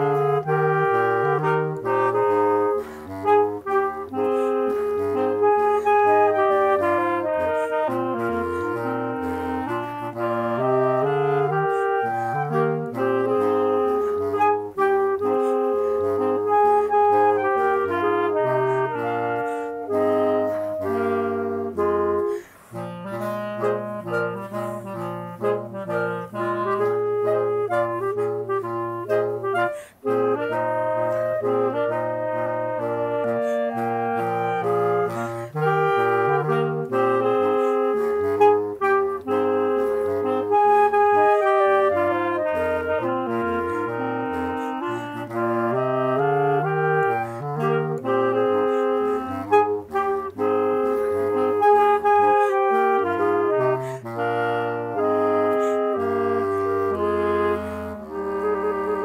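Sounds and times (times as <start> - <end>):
clarinet ensemble playing: 0.0 - 59.0.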